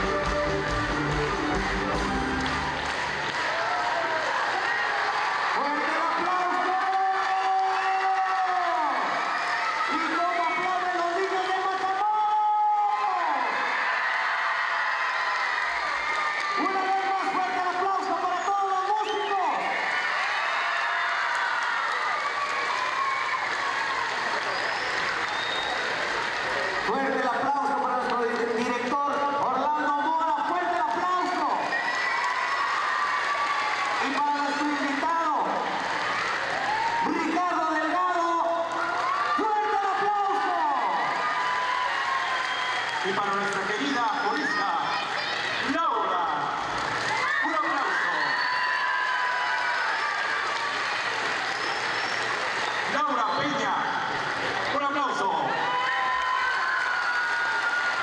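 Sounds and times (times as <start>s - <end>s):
applause: 0.0s - 45.3s, 46.6s - 58.0s
children cheering and shouting: 19.6s - 25.3s, 31.6s - 35.0s, 38.8s - 42.5s, 43.8s - 52.8s.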